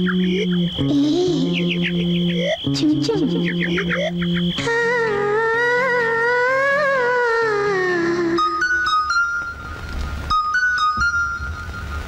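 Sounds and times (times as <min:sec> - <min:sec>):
gliding lead note: 0:00.0 - 0:12.0
high keyboard notes: 0:00.0 - 0:12.0.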